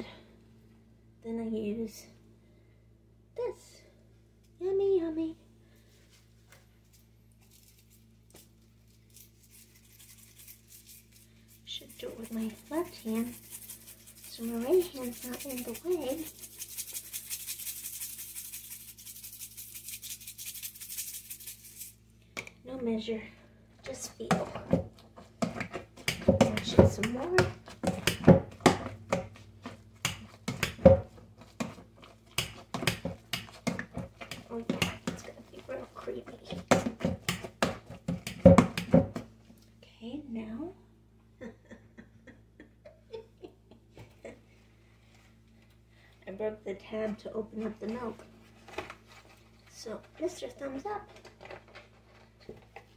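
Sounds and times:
seasoning shaker rattling: 6.8 - 22.1.

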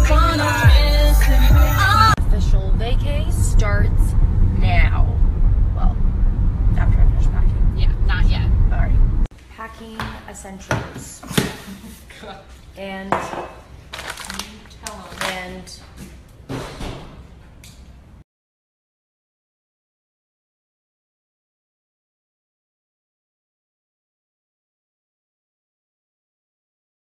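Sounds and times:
woman's voice: 2.1 - 5.2, 5.8 - 6.0, 6.7 - 13.5, 14.1 - 16.0.

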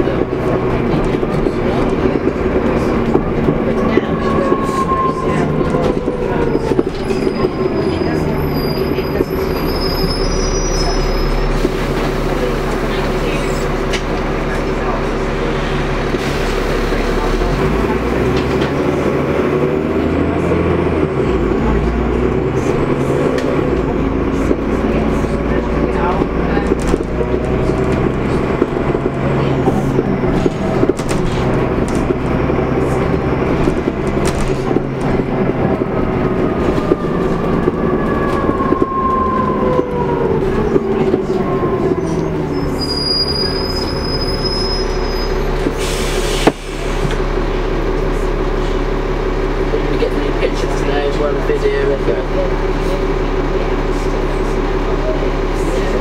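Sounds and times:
bus engine running: 0.0 - 56.0.

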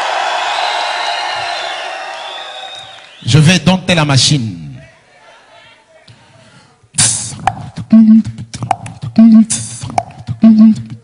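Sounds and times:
person beatboxing: 6.9 - 11.0.

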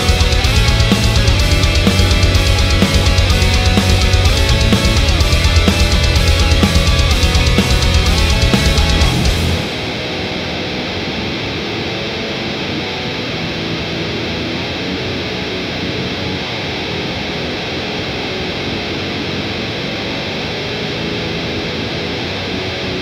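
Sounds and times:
muffled electric guitar: 0.0 - 23.0.

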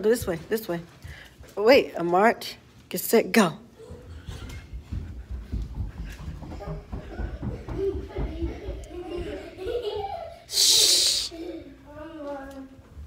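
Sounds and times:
running footsteps on carpet: 0.0 - 2.0, 3.8 - 10.2
loud hiss: 10.5 - 11.4.

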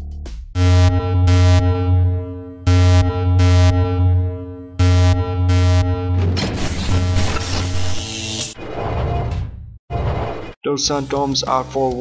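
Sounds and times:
ringing sonar-like tone: 0.9 - 6.2.

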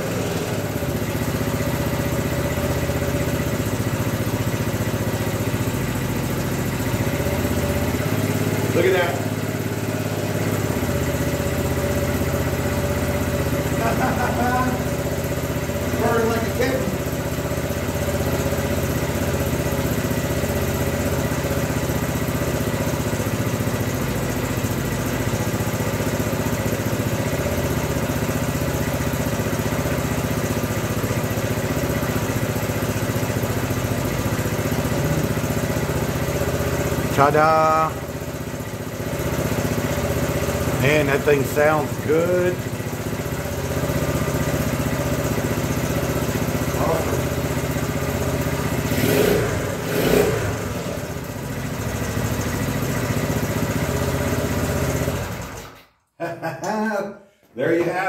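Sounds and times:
motorcycle engine idling: 0.0 - 55.7.

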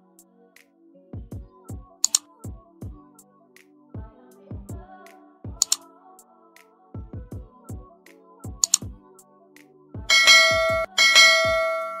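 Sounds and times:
bright bell ringing: 10.1 - 12.0.

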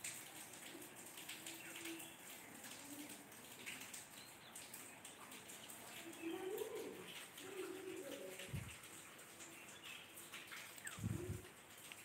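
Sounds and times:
bird cooing: 6.0 - 8.8, 10.8 - 11.5.

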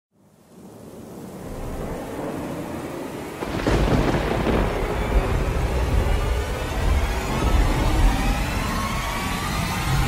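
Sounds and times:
rain-like hiss: 0.2 - 10.0
rolling thunder rumble: 0.4 - 10.0.

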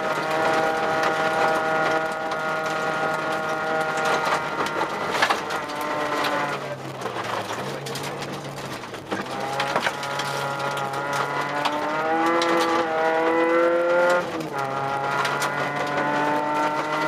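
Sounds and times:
gravel ticks: 0.0 - 17.0
rally car engine revving: 0.0 - 17.0.

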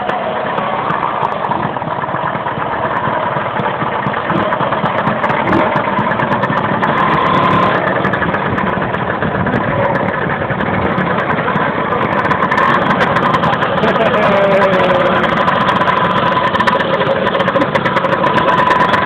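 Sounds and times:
scooter engines running: 0.0 - 19.0.

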